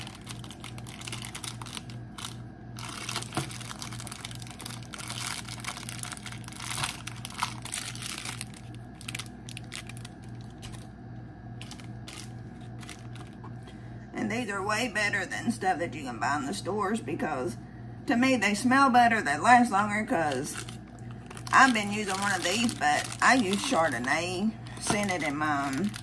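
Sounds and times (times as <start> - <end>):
plastic wrapper crinkling: 0.0 - 10.9, 11.6 - 13.7, 20.3 - 26.0.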